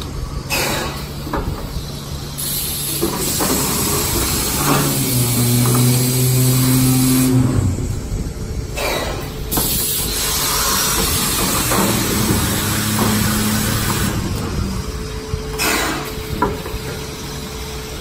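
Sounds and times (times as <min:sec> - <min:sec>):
machine hiss: 0:00.4 - 0:18.0.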